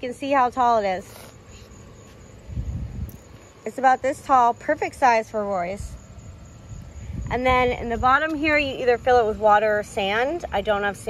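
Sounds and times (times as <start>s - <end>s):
low rumble on microphone: 2.4s - 3.7s, 5.8s - 10.0s.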